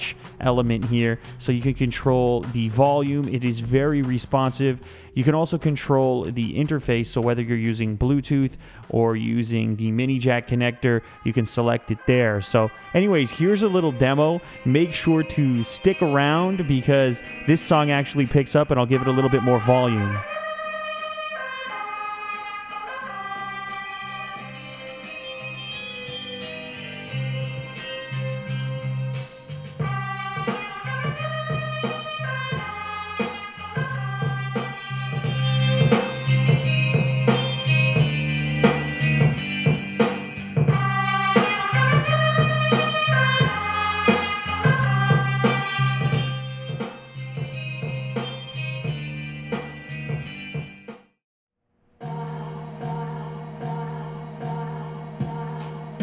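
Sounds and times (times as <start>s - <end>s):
song through desktop speakers: 0.0s - 51.0s, 52.0s - 56.0s.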